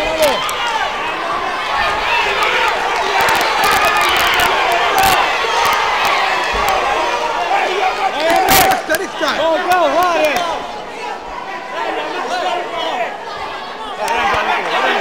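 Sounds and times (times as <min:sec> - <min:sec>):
crowd shouting: 0:00.0 - 0:15.0.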